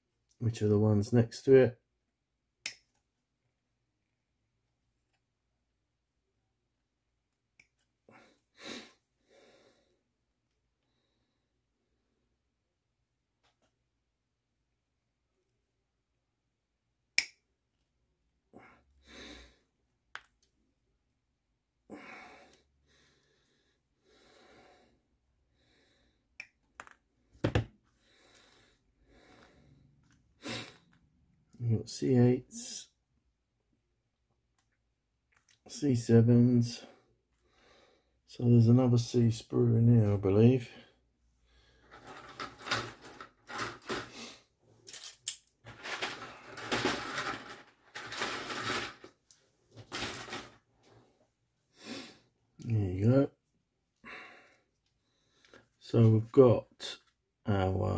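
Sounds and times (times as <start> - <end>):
plastic knock: 27.4 - 27.7
plastic parts clattering and rustling: 41.8 - 44.2, 44.8 - 50.7.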